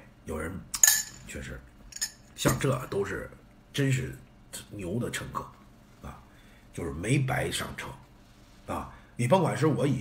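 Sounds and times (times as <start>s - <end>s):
metal spoon clinking on tableware: 0.8s - 1.2s, 1.9s - 2.6s.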